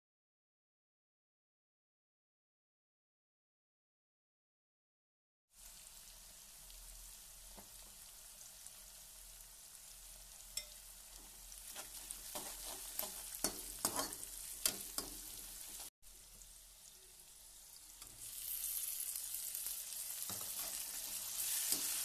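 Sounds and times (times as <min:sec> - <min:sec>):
food frying in oil: 0:05.5 - 0:22.0
tomatoes sizzling in hot oil: 0:05.5 - 0:22.0
metal skimmer scraping a pan: 0:11.7 - 0:15.2.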